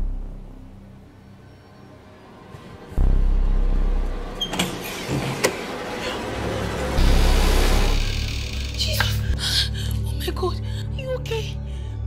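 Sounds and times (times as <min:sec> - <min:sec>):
deep rumble: 0:00.0 - 0:01.2, 0:02.9 - 0:12.0.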